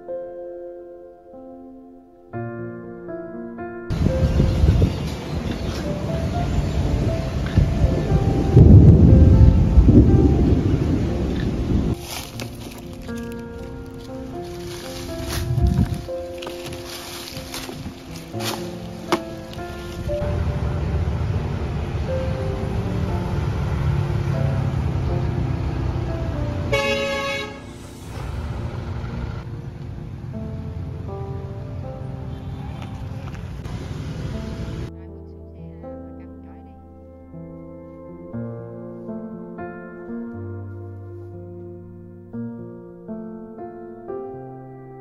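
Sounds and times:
soft background music: 0.0 - 45.0
loud low rolling rumble: 3.9 - 34.9
motorbikes and cars passing: 3.9 - 34.9
vehicle horn honk: 26.6 - 29.4.

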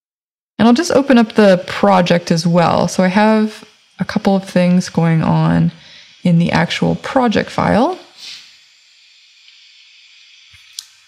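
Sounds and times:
faint recording hiss: 0.6 - 11.0
soft breath: 5.7 - 6.2.

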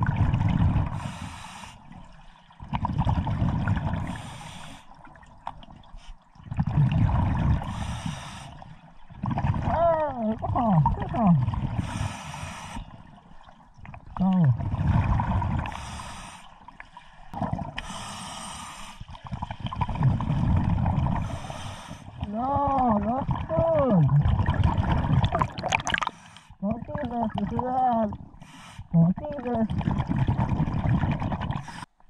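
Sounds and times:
rumbling exhaled bubbles: 0.0 - 1.1, 2.6 - 4.3, 5.2 - 8.0, 8.6 - 12.2, 13.7 - 15.9, 17.3 - 18.0, 19.1 - 32.0
muffled voice through mouthpiece: 9.7 - 11.4, 28.9 - 29.8.

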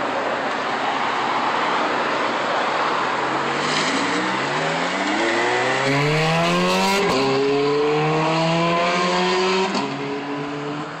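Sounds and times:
sports car accelerating hard: 3.3 - 11.0.

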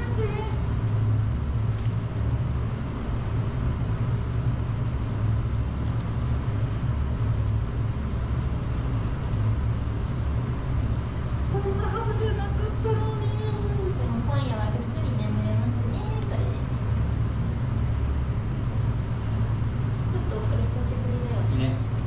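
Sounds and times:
low mechanical hum: 0.0 - 22.0.

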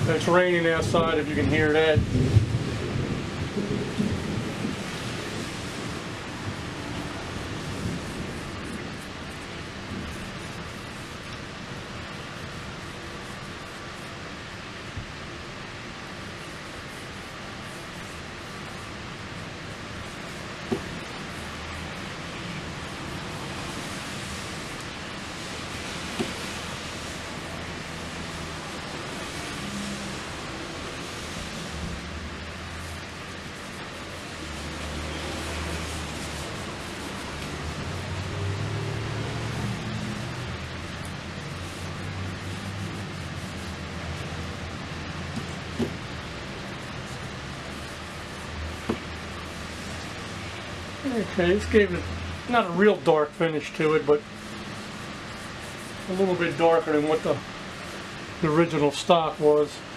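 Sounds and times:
rain falling: 0.0 - 59.9.

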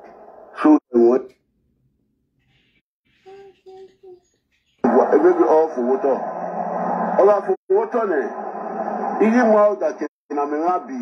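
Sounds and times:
person talking over phone line: 4.8 - 6.2.

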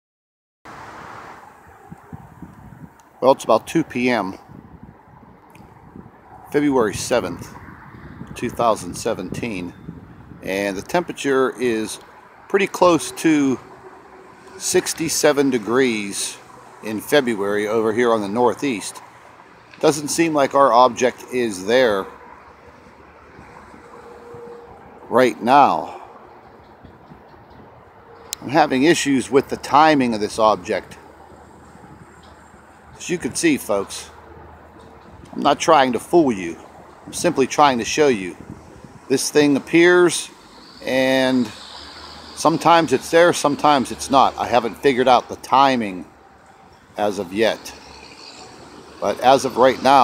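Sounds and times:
rushing outdoor background noise: 0.7 - 50.0.

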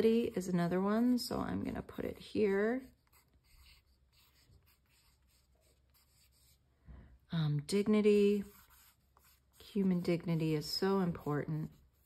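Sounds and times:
pencil scratching on paper: 2.0 - 6.6, 7.8 - 12.0.

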